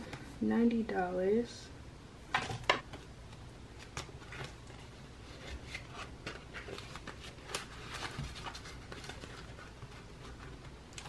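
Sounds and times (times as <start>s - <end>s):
paper bills and plastic rustling: 3.8s - 11.0s.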